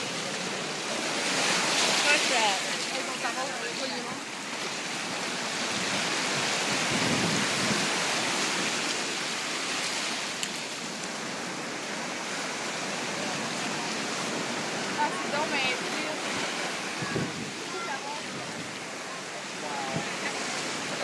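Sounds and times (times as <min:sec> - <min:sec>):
surf washing on shore: 0:00.0 - 0:21.0.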